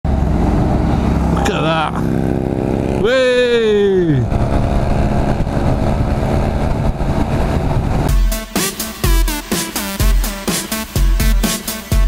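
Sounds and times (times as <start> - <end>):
motorcycle engine running: 0.0 - 12.0
person exclaiming: 3.0 - 4.3.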